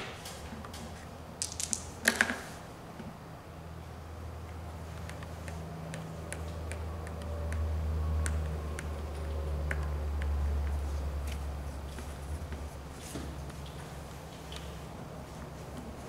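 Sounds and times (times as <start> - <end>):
game pieces clicking: 1.4 - 2.4.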